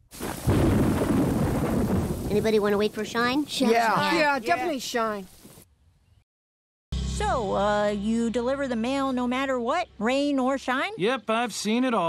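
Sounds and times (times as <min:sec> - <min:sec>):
rain: 0:00.0 - 0:05.6
thunder rumbling: 0:00.0 - 0:05.6.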